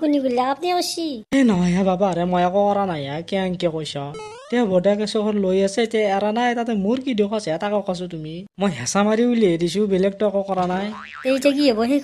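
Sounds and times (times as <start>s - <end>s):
springy boing warble: 4.2s - 4.8s, 10.8s - 11.8s.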